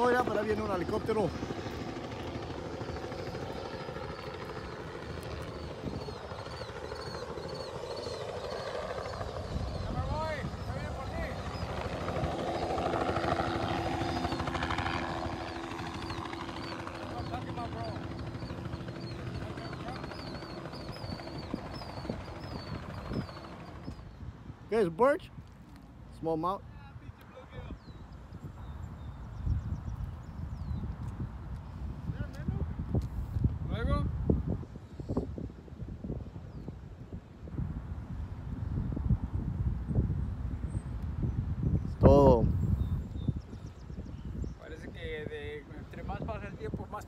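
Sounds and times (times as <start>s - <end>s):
helicopter flying over: 0.0s - 47.0s.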